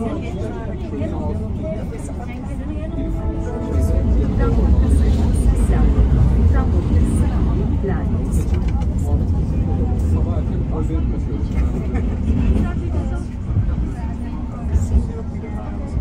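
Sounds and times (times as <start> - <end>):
passengers talking indistinctly: 0.0 - 16.0
tram rumbling: 0.0 - 16.0.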